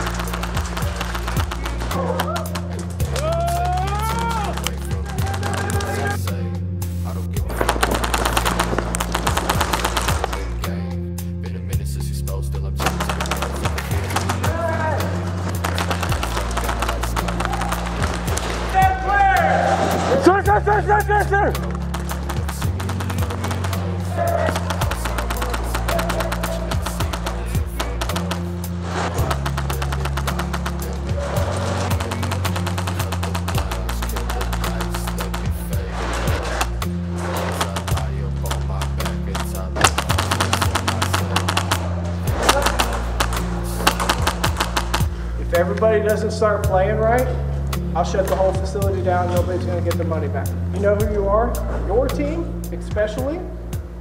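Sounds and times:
airsoft guns firing: 0:00.0 - 0:06.2, 0:07.4 - 0:10.8, 0:12.8 - 0:45.8
fast clicking: 0:00.0 - 0:06.2, 0:07.5 - 0:10.6, 0:12.8 - 0:19.1, 0:20.2 - 0:45.2
background music: 0:00.0 - 0:54.0.

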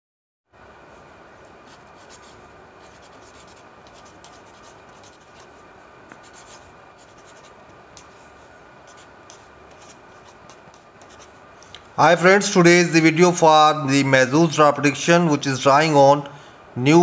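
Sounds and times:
steady background hiss: 0:00.6 - 0:17.0
pen scratching on paper: 0:01.6 - 0:08.2, 0:08.9 - 0:11.4.

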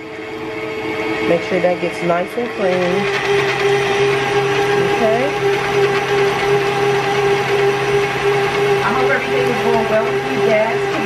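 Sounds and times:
electric stand mixer running: 0:00.0 - 0:11.0.

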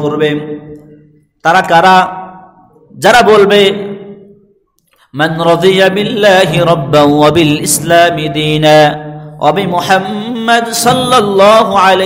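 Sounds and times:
man chanting: 0:05.1 - 0:12.0.

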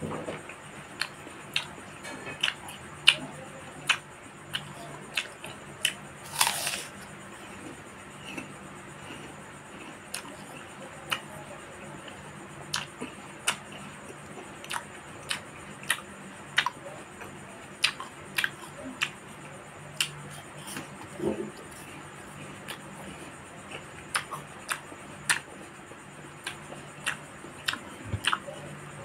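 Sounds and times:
faint steady hum: 0:00.0 - 0:29.0
crunchy chewing burst: 0:00.4 - 0:11.3, 0:11.9 - 0:25.7, 0:26.3 - 0:29.0
mouth clicks and smacks chewing: 0:01.0 - 0:01.8, 0:02.4 - 0:06.8, 0:12.0 - 0:25.6, 0:26.4 - 0:28.8.

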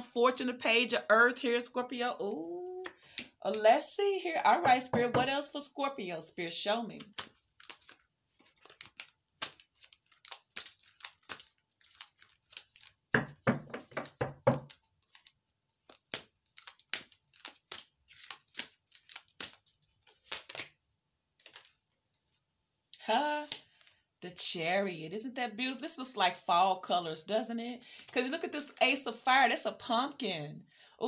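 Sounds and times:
cards being shuffled: 0:06.9 - 0:22.4.

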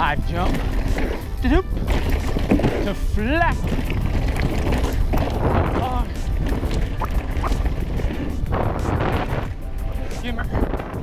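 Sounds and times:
background music: 0:00.0 - 0:11.0
wind buffeting microphone: 0:00.0 - 0:11.0.

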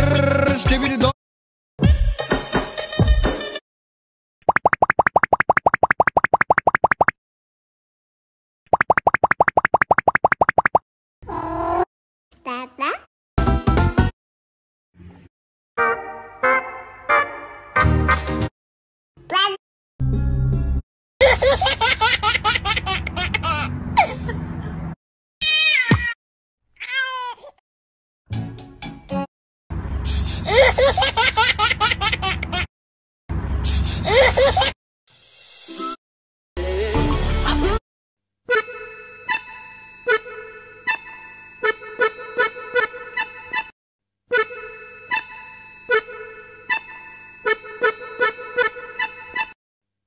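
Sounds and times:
cartoon bloop rising pips: 0:04.4 - 0:07.2, 0:08.7 - 0:10.8
laughter: 0:21.2 - 0:24.4, 0:30.5 - 0:32.7, 0:34.0 - 0:34.7
cat meowing: 0:25.4 - 0:26.2.

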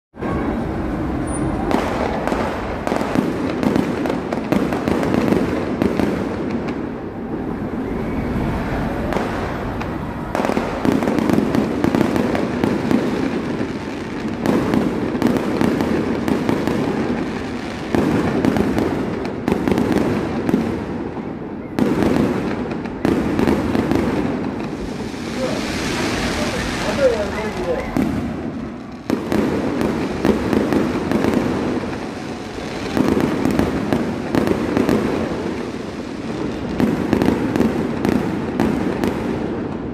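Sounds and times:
fireworks cracks and bangs: 0:00.1 - 0:39.9
rumble of firework bursts: 0:00.2 - 0:39.9.

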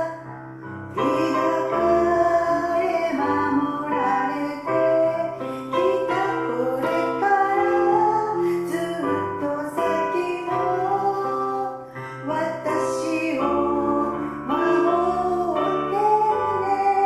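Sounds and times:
person singing: 0:00.0 - 0:17.0
piano chords: 0:00.0 - 0:17.0.

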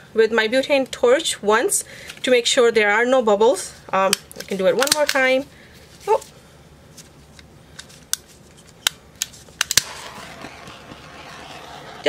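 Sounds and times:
torch flame hissing: 0:09.7 - 0:12.0.

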